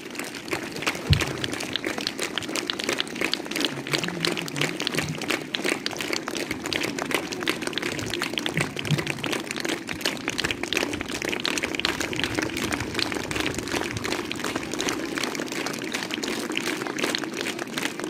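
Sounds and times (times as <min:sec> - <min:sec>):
audience applauding: 0:00.0 - 0:18.0.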